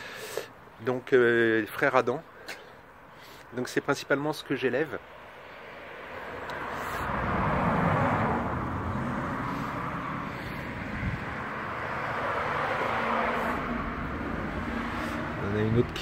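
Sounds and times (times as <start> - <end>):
cars passing: 2.2 - 16.0.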